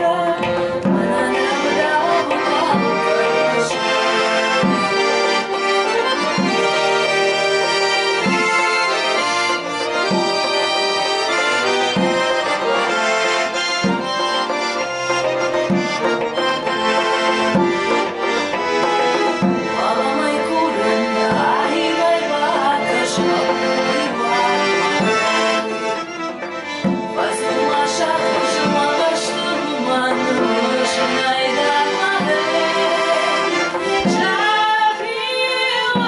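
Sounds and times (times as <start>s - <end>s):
piano accordion melody: 0.0s - 36.0s.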